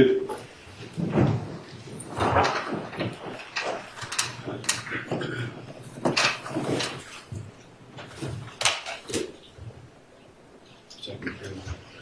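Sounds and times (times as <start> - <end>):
chairs moving: 0.3 - 9.8
knocks and rustling: 0.3 - 9.9.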